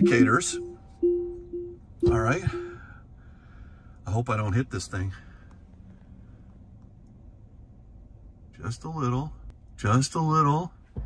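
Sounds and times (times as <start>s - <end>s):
faint low cabin rumble: 0.0s - 11.0s.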